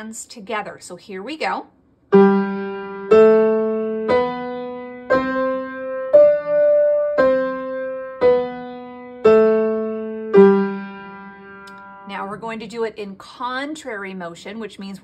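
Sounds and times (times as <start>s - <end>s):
upright piano playing a scale: 2.1s - 12.3s.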